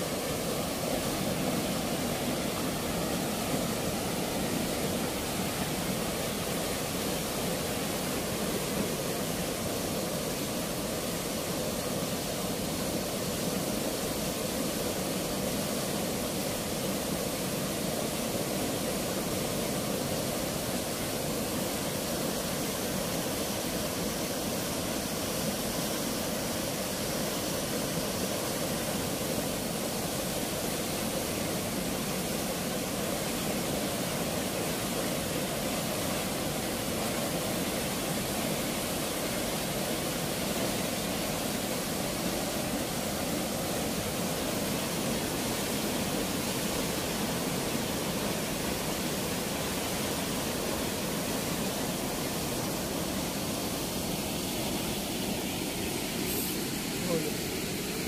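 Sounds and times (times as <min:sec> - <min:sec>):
water rushing through sluice gate: 0:00.0 - 0:58.0.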